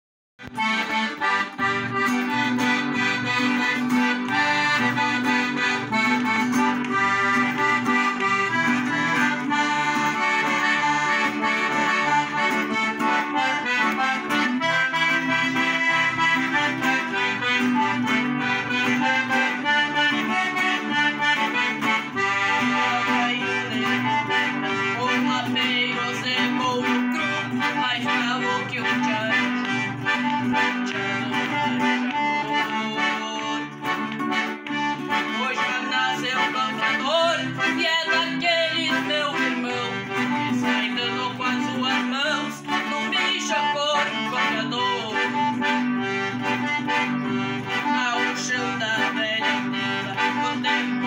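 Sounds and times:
acoustic guitar strumming: 0.4 - 51.0
piano accordion melody: 0.4 - 51.0.

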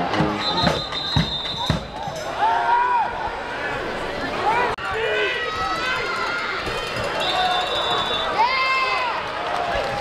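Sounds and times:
crowd shouting and cheering: 0.0 - 10.0.

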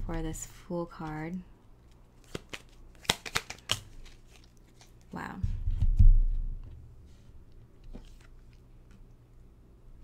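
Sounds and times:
cards snapping and flicking: 1.9 - 5.0.

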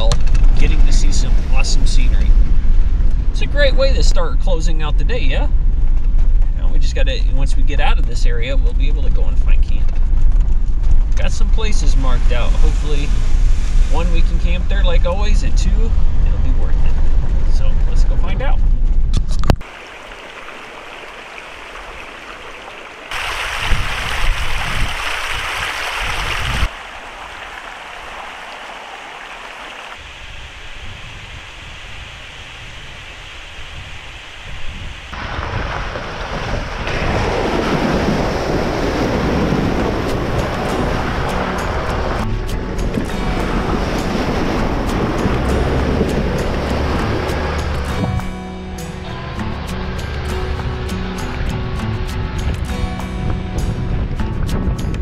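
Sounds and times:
vehicle rolling on dirt track: 0.0 - 23.2, 35.0 - 48.2
creek water rushing over rocks: 19.6 - 42.2.

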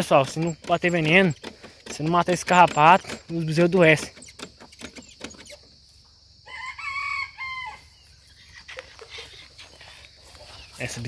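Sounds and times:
rooster crowing: 6.4 - 8.0.

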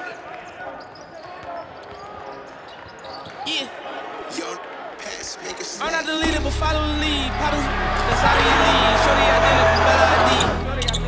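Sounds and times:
echoing voices in large hall: 0.0 - 11.0
basketballs bouncing on court: 0.2 - 3.5.

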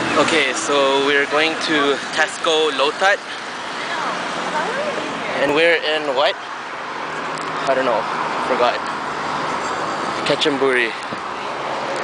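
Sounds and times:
hum of road traffic: 0.0 - 12.0.

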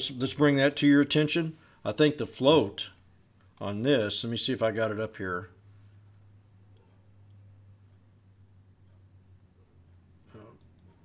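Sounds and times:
low steady hum: 0.0 - 11.0
faint murmur: 10.2 - 10.7
computer mouse clicks: 10.4 - 11.0.

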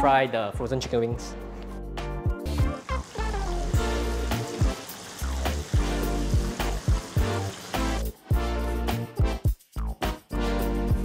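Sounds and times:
upbeat music with bass: 0.0 - 11.0
chicken deep-frying in oil: 2.5 - 8.1.

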